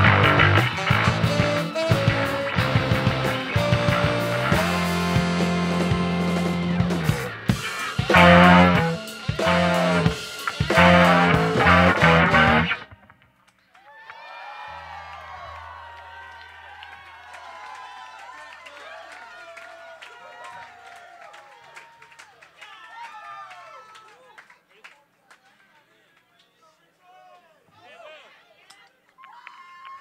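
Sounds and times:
live rock band playing: 0.0 - 13.1
crowd cheering and clapping: 0.0 - 25.4, 28.7 - 30.0.

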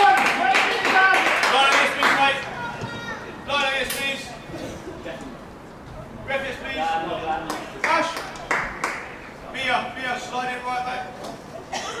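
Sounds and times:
indistinct shouting: 0.0 - 3.5.

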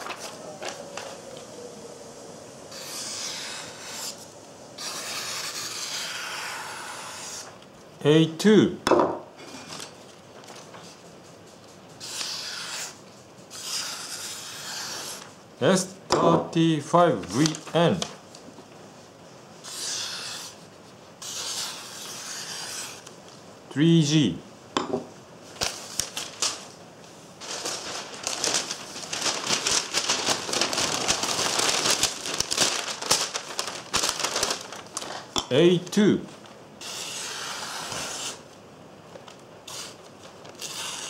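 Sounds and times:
knife slicing through paper: 21.2 - 23.0, 36.8 - 38.4, 39.7 - 41.0.

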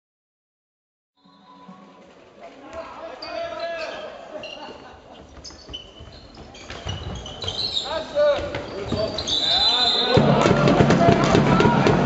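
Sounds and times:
ball bouncing on hall floor: 5.2 - 9.4
people shouting: 9.4 - 12.0.

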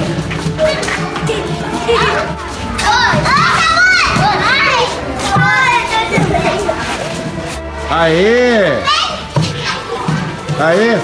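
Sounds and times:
children shouting and squealing: 0.0 - 11.0.

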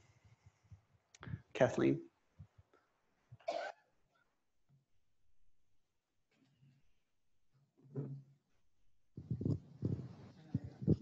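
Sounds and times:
person coughing: 3.4 - 3.8.

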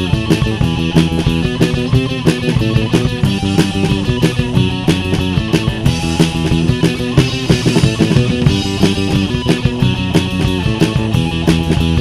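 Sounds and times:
rock band music: 0.0 - 12.0.

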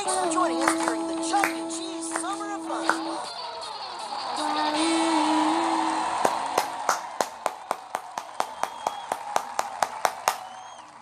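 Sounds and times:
rhythmic hand clapping: 0.5 - 3.3, 5.5 - 11.0
crowd cheering: 0.6 - 11.0.

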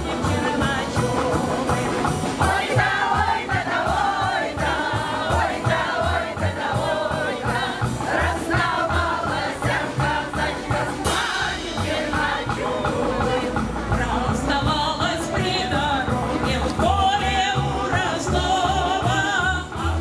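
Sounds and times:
choir singing: 0.0 - 20.0
instrumental accompaniment: 0.0 - 20.0
steady bass beat: 0.0 - 20.0.

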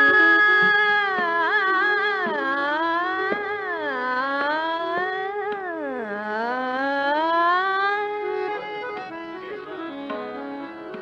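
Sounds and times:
harmonium phrase: 0.0 - 3.8, 8.1 - 11.0.

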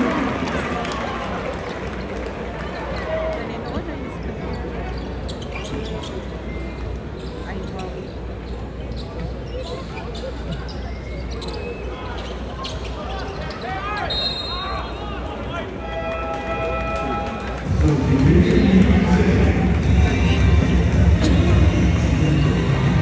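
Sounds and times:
crowd murmur: 0.0 - 23.0
shoe squeaks and ball bounces: 4.6 - 14.7
arena music with heavy beat: 17.7 - 23.0.

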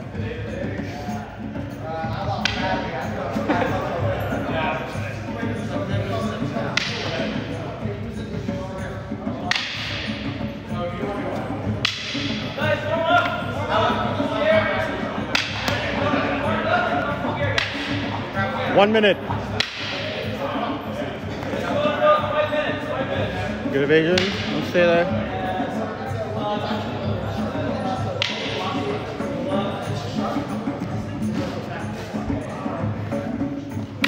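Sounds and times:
background music: 0.0 - 34.0
voices: 0.0 - 34.0.

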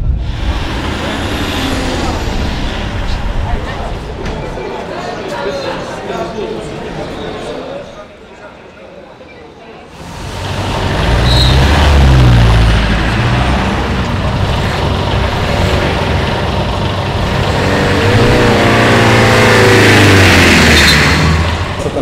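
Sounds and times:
heavy vehicle engine: 0.0 - 6.2, 9.8 - 22.0
road vehicle engines running: 0.0 - 22.0.

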